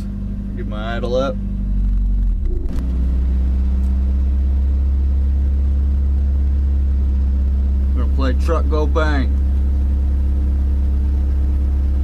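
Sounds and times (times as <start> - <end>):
truck engine revving to idle: 0.0 - 12.0.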